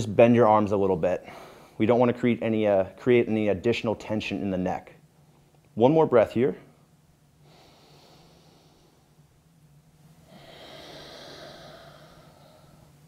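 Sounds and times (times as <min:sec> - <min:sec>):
man breathing through nose: 0:07.4 - 0:09.1, 0:10.2 - 0:13.0.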